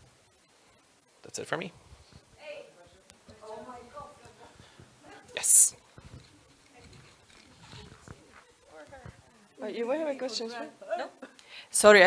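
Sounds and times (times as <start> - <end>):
faint indistinct voices: 2.3 - 11.2.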